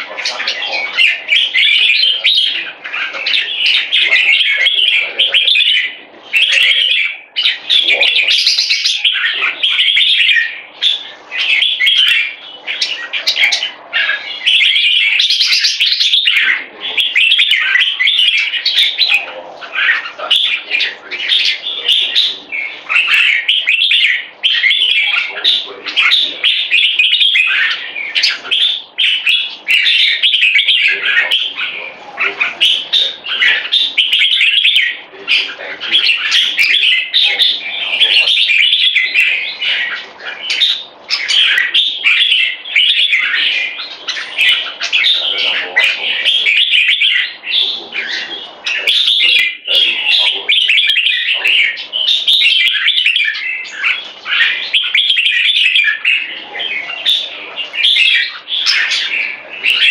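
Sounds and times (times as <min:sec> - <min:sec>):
bulbul singing chirpy phrases: 0:00.0 - 0:59.9.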